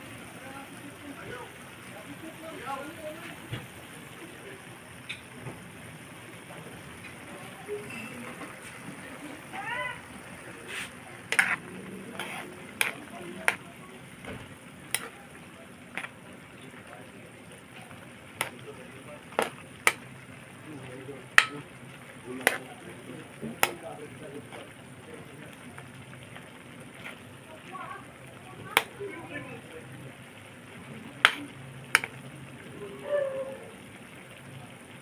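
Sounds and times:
sauce sizzling: 0.0s - 35.0s
spatula knocking against pan: 21.4s - 21.6s, 31.2s - 32.1s.

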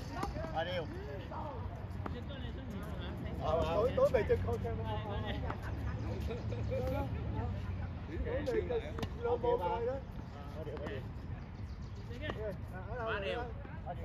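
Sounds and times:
people talking: 0.0s - 11.1s.

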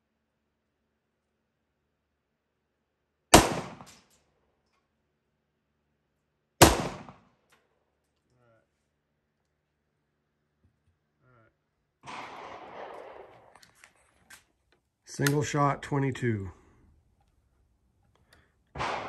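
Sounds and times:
pistol shot: 3.3s - 4.0s, 6.6s - 7.3s, 12.0s - 13.6s, 18.7s - 19.0s.

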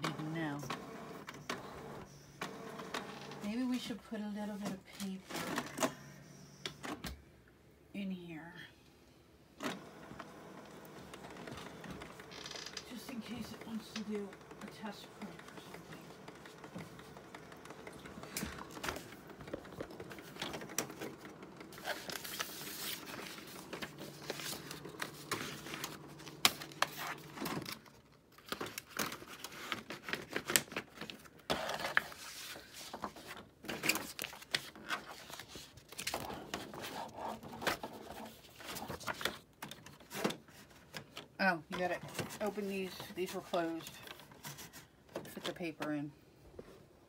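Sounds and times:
printer mechanism humming: 0.0s - 3.5s, 9.6s - 12.3s, 12.9s - 27.8s
paper rustling: 17.8s - 41.2s, 41.8s - 45.6s.

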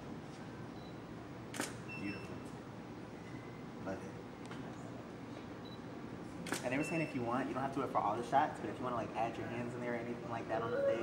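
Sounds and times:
low studio hum: 0.0s - 11.0s
camera shutter click: 1.5s - 1.8s, 6.4s - 6.7s.

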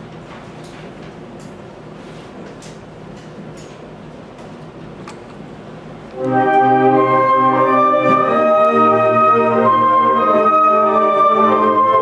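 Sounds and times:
room noise: 0.0s - 12.0s
audience rustling: 6.2s - 12.0s.

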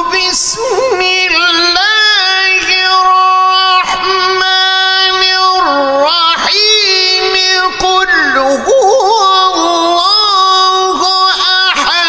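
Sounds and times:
man chanting melismatically: 0.0s - 12.0s.

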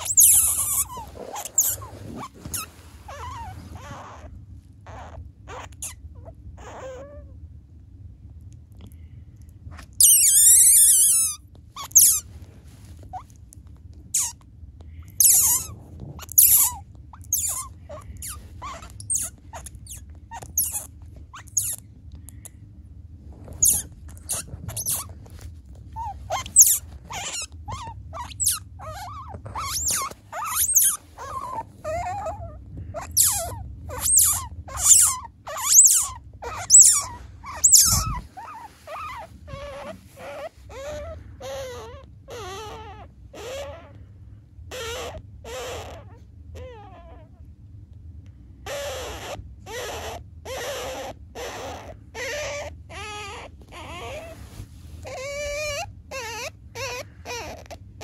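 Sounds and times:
otter pup squeaking: 0.0s - 7.3s, 9.7s - 22.5s, 23.4s - 44.0s, 44.6s - 47.5s, 48.6s - 58.0s.

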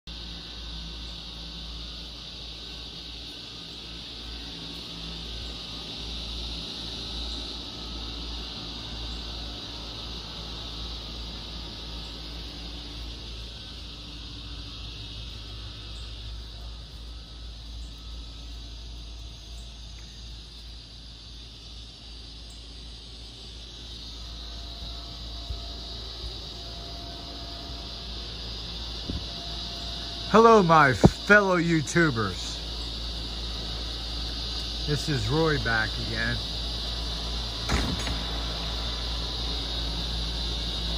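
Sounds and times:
cicada chorus buzzing: 0.0s - 40.9s.

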